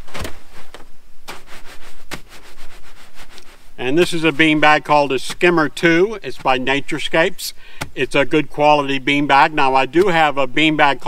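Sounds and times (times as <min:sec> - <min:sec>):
fabric beanbag rustling: 0:00.0 - 0:03.7.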